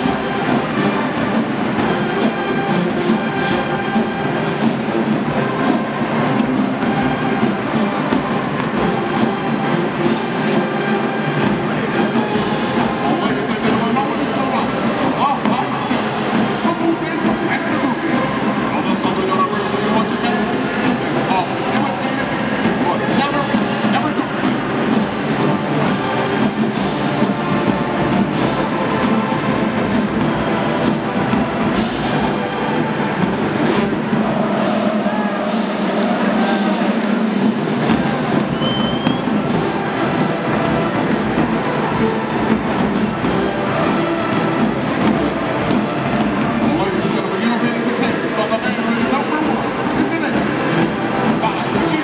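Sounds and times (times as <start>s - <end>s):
crowd noise: 0.0s - 52.0s
marching band playing: 0.0s - 52.0s
percussion hits: 0.0s - 52.0s.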